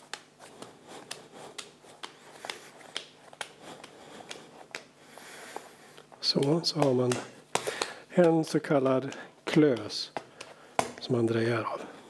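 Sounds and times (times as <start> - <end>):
hands patting and rubbing clay: 0.0 - 12.0.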